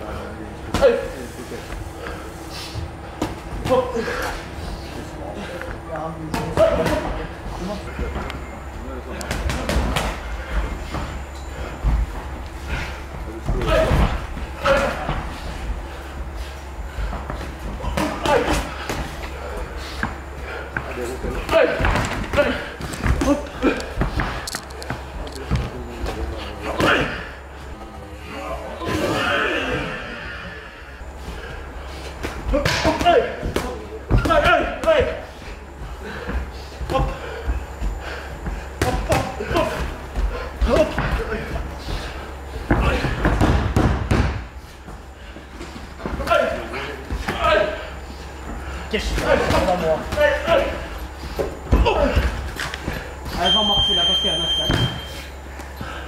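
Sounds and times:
vocal grunts: 20.5 - 24.4, 26.5 - 27.4, 28.3 - 30.8, 48.7 - 53.2
boxing gloves thudding: 38.8 - 44.6
boxing gloves hitting: 42.7 - 44.5.

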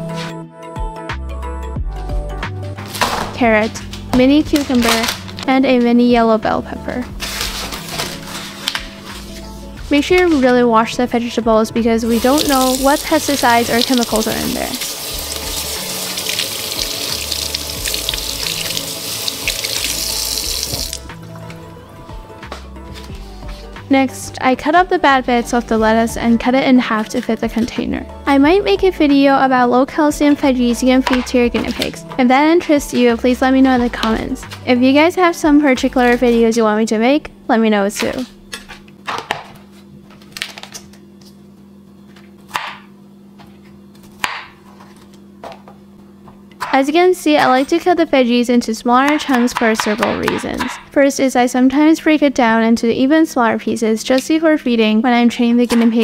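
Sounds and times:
background music: 0.0 - 38.3
faucet water splashing into sink: 12.2 - 21.1
knife chopping on cutting board: 44.0 - 44.6.

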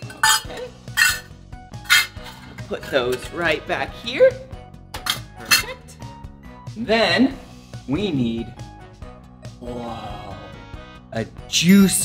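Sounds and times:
metal measuring cups clinking: 0.0 - 3.6, 5.0 - 5.8
light background music: 0.0 - 12.0.

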